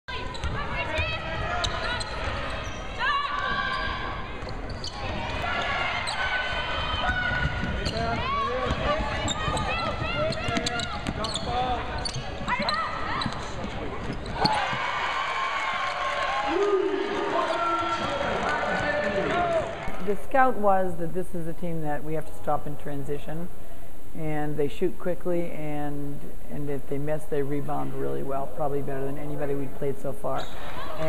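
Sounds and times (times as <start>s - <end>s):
sneakers squeaking: 0.1s - 15.0s, 30.4s - 31.0s
players' voices: 0.1s - 21.0s.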